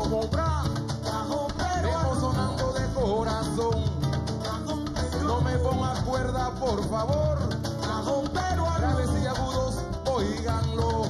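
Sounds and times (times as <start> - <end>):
hand drumming: 0.0 - 11.0
men singing: 0.0 - 11.0.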